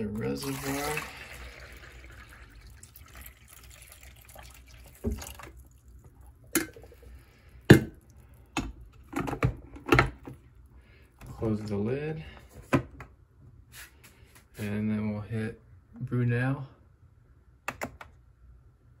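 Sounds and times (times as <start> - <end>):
water pouring and splashing: 0.0 - 7.0.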